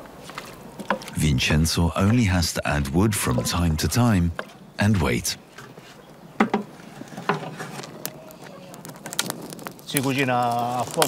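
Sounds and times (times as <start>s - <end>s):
brief voice-like sounds: 1.2s - 5.4s
wood fire crackling: 7.6s - 11.0s.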